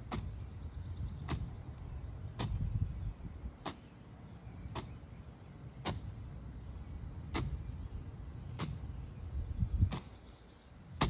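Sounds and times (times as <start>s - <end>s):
steady low rumble: 0.0s - 11.0s
branch slapping against canvas: 2.3s - 2.7s, 3.6s - 3.9s.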